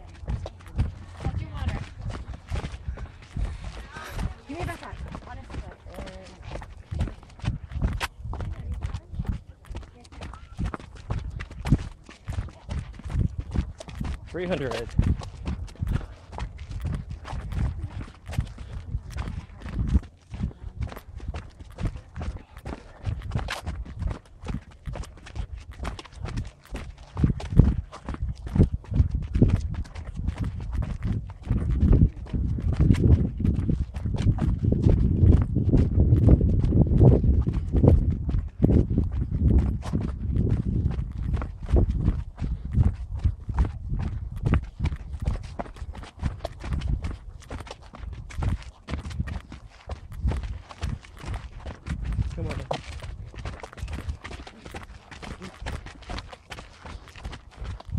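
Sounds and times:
footsteps running down steps: 0.0s - 57.9s.

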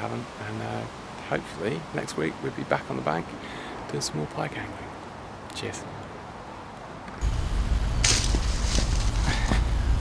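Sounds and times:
steady low rumble: 7.2s - 10.0s
short rustle: 8.0s - 9.6s.

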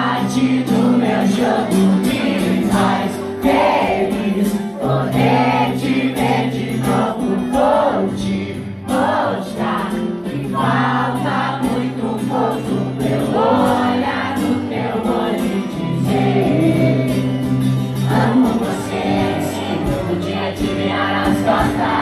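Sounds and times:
acoustic guitar chords: 0.0s - 22.0s
crowd singing along: 0.0s - 22.0s.

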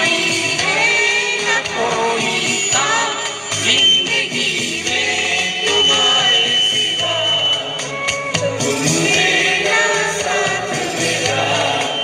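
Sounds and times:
music: 0.0s - 12.0s
person singing through microphone: 0.0s - 12.0s.

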